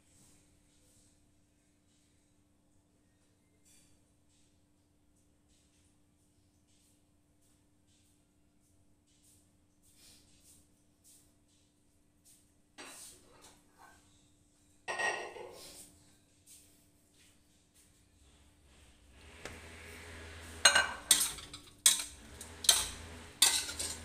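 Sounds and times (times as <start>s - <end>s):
kitchenware clattering: 14.9s - 15.7s, 19.3s - 24.0s.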